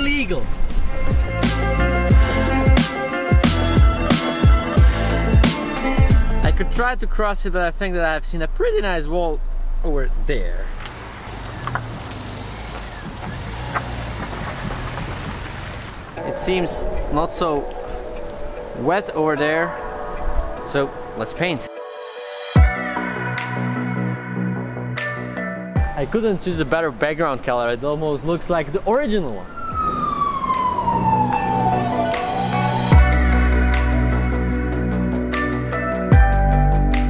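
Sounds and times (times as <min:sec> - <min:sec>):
tyre and road noise: 0:06.6 - 0:21.2, 0:25.8 - 0:33.2
siren wailing: 0:16.2 - 0:21.1, 0:29.3 - 0:33.6.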